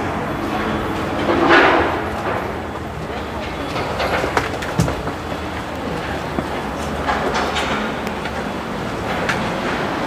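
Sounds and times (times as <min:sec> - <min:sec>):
street traffic: 0:00.0 - 0:10.0.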